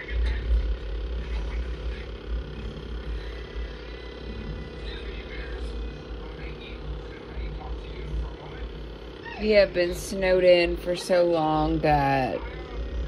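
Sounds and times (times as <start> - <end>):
faint voices: 0.0 - 13.0
steady hum: 0.0 - 13.0.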